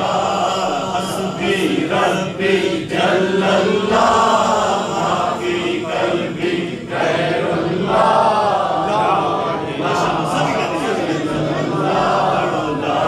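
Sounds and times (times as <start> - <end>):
man singing through a microphone: 0.0 - 5.0.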